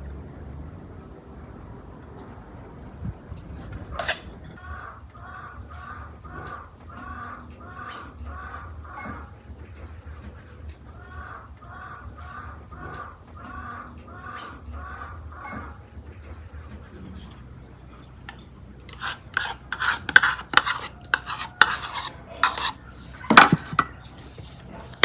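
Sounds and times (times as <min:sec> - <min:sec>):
bird calling: 0:03.9 - 0:18.3.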